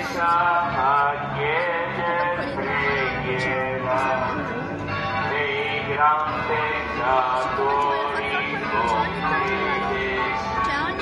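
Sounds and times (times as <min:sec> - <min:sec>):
low crowd noise: 0:00.0 - 0:11.0
person singing a hymn: 0:00.0 - 0:11.0.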